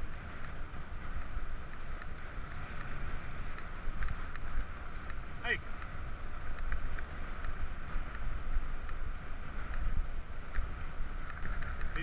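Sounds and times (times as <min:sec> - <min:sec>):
tyres rolling on dirt path: 0:00.0 - 0:12.0
wind buffeting microphone: 0:00.0 - 0:12.0
faint light clicks: 0:00.3 - 0:09.0, 0:09.6 - 0:12.0.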